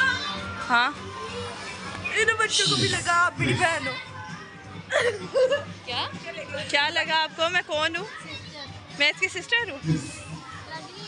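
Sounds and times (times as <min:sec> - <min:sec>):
children chattering: 0:00.0 - 0:06.6, 0:07.9 - 0:11.0.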